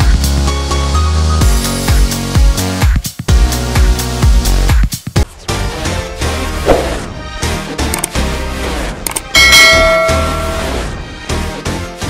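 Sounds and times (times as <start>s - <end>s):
bright bell-like chime: 9.4s - 10.9s.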